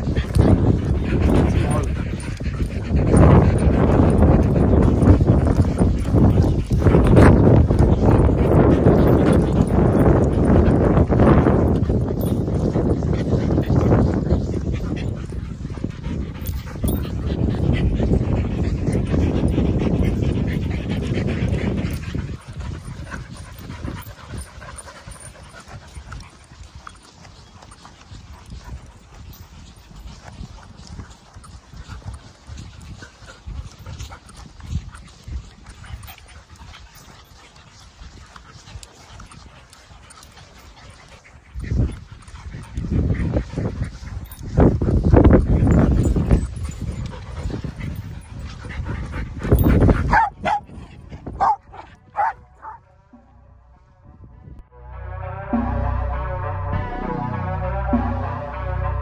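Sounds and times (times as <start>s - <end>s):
dog vocalizations: 0.0s - 52.8s
dogs panting: 0.0s - 54.6s.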